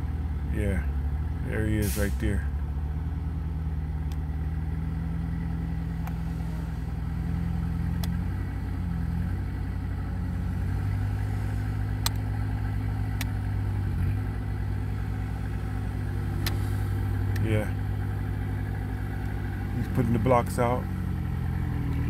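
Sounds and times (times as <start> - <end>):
heavy vehicle engine running: 0.0 - 22.0
sharp clicks: 12.0 - 12.3, 16.4 - 16.7.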